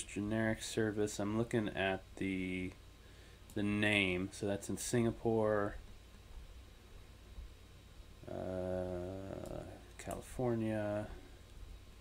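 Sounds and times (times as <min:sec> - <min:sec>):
man saying uh: 0:08.2 - 0:11.2.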